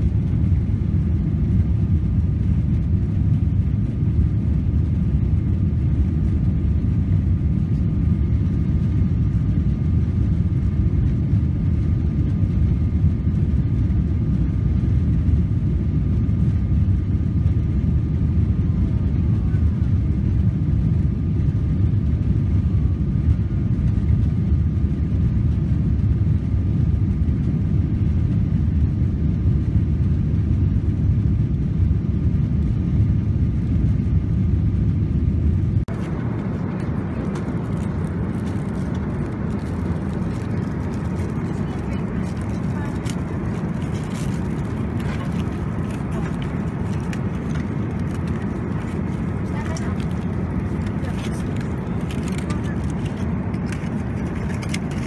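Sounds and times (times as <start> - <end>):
engine rumble and rushing air: 0.0 - 55.0
faint steady whine: 0.0 - 55.0.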